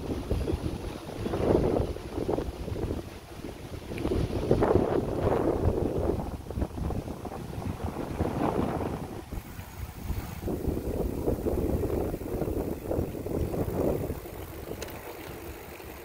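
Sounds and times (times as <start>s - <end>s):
wind buffeting microphone: 0.0s - 16.0s.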